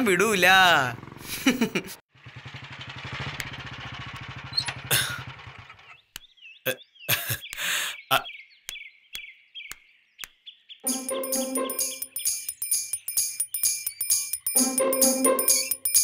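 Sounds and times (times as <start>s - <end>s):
motorcycle engine idling: 0.0s - 6.0s
birds chirping: 4.4s - 16.0s.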